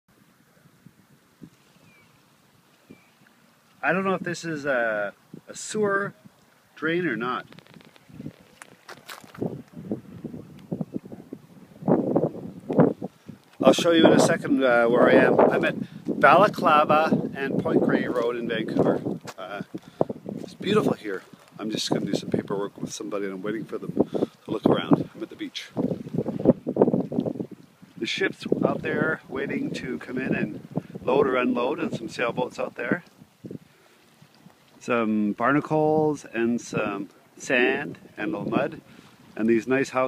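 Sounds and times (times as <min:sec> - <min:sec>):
wind buffeting microphone: 0:07.1 - 0:34.7
footsteps crunching on shells: 0:07.4 - 0:09.8.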